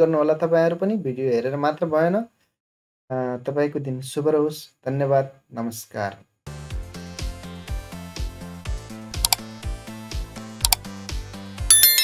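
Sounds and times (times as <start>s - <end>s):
background music with steady beat: 6.5s - 12.0s
mouse-click sound effects: 9.2s - 9.4s
bright bell chime: 11.7s - 12.0s.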